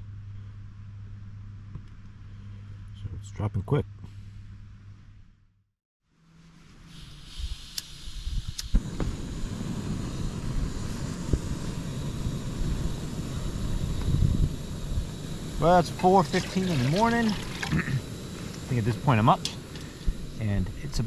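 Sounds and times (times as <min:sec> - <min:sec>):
gas burner hissing: 0:06.8 - 0:21.0.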